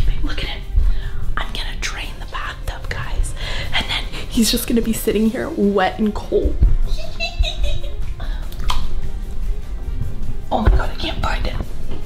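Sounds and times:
woman whispering: 0:00.0 - 0:00.7
steady low rumble: 0:00.0 - 0:12.0.

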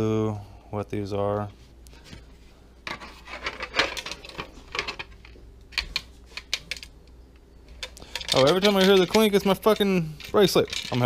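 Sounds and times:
plastic pieces clicking: 0:07.7 - 0:11.0.

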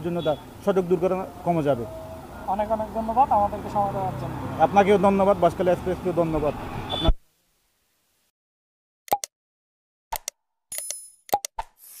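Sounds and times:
sharp mouse clicks: 0:10.2 - 0:11.7.

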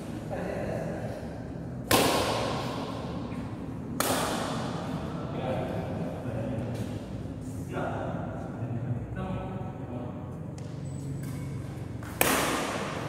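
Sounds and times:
racket striking shuttlecock with echo: 0:01.8 - 0:05.0, 0:10.6 - 0:13.0.

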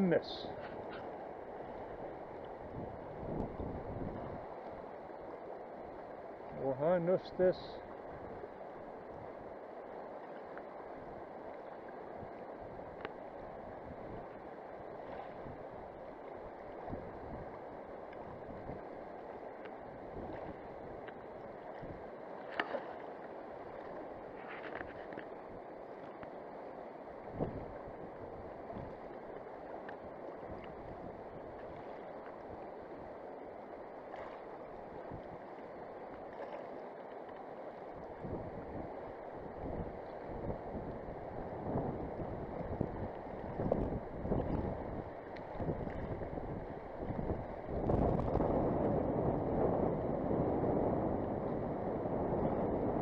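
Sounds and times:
fast river current rushing: 0:00.0 - 0:53.0.

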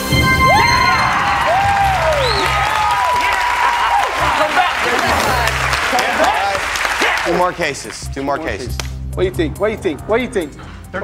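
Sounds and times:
audience cheering and clapping: 0:00.0 - 0:08.0
loud shouts and whoops: 0:00.5 - 0:05.5
game-show music with low beat: 0:04.0 - 0:11.0.

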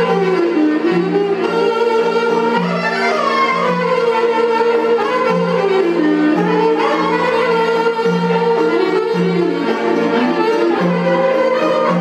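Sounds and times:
clarinet melody: 0:00.0 - 0:12.0.

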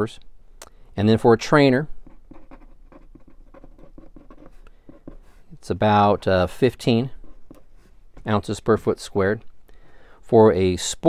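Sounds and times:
marker writing on paper: 0:02.0 - 0:05.6, 0:07.2 - 0:08.3.

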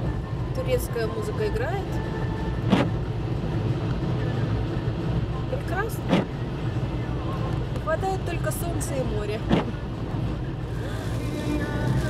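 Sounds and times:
car driving hum: 0:00.0 - 0:12.0
music on car radio: 0:00.0 - 0:12.0.

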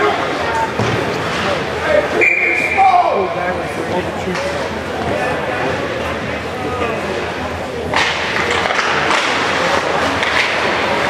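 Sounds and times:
spectators chattering: 0:00.0 - 0:11.0
referee's whistle blast: 0:02.2 - 0:02.8.

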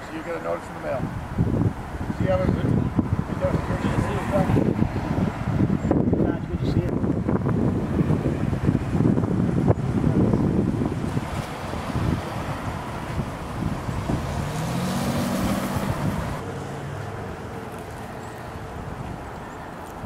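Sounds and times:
wind rumbling on microphone: 0:00.8 - 0:17.2, 0:17.8 - 0:20.0
vehicle passing: 0:01.2 - 0:19.8.

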